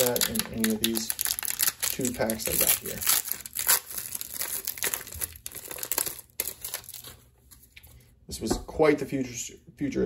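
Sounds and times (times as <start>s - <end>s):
wrapper being torn and crumpled: 0.0s - 7.2s.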